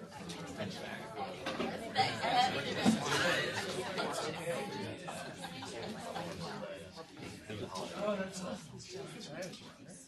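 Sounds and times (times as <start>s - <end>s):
people talking in a room: 0.0s - 10.0s.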